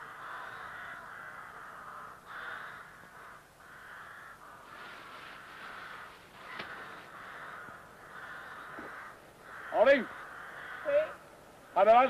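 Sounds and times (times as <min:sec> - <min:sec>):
crow-like caw: 0:00.0 - 0:12.0
faint steady hiss: 0:00.0 - 0:12.0.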